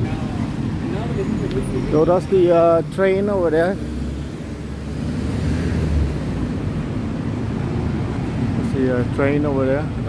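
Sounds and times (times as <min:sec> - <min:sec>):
low rumble of vehicles: 0:00.0 - 0:10.0.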